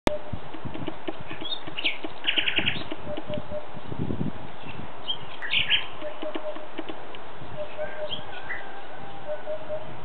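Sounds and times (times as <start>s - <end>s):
thrushes singing: 0.1s - 3.9s, 4.5s - 10.0s.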